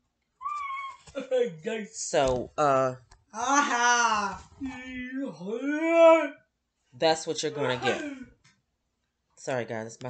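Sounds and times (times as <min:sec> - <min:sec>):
young child crying: 0:00.4 - 0:01.1
child vocal sounds: 0:07.6 - 0:08.3.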